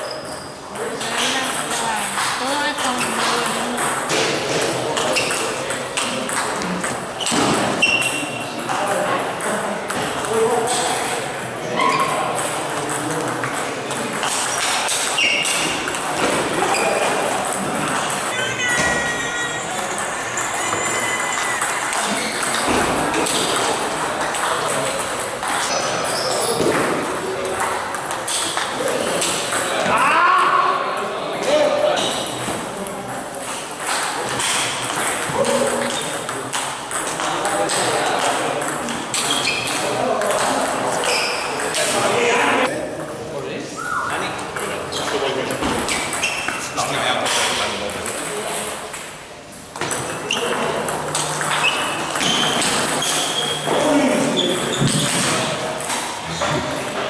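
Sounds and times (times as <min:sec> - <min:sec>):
voices in a large hall: 0:00.0 - 0:57.0.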